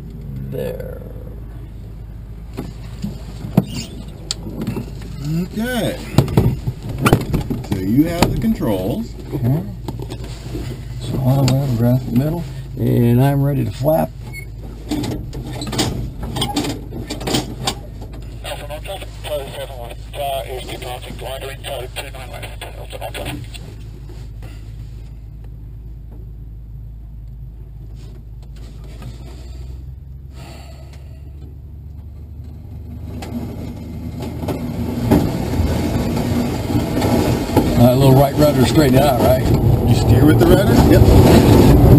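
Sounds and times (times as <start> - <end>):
wind rushing: 38.9 - 41.9.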